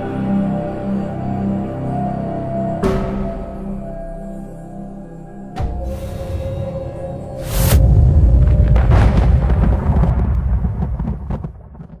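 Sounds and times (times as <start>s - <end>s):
deep loud rumble: 5.7s - 12.0s.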